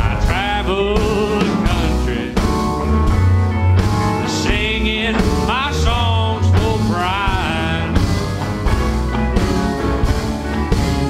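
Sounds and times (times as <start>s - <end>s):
drums: 0.0s - 11.0s
sliding lead guitar line: 0.0s - 11.0s
upright bass: 0.0s - 11.0s.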